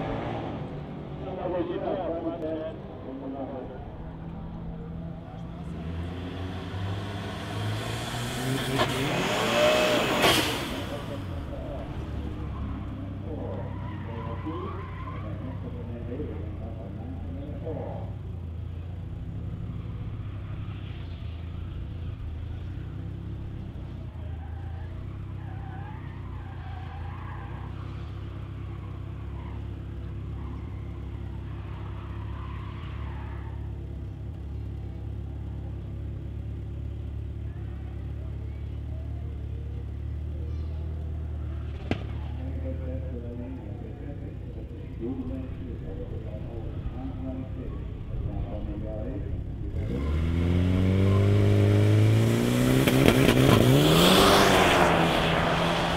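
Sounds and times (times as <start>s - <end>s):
car engine idling: 0.0s - 55.9s
faint distant voices: 37.0s - 49.8s.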